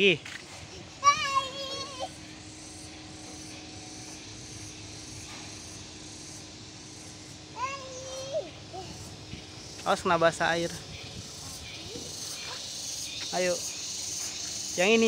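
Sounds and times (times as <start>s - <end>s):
background hiss: 0.0s - 15.0s
child's high-pitched call: 0.7s - 2.3s, 7.5s - 9.2s.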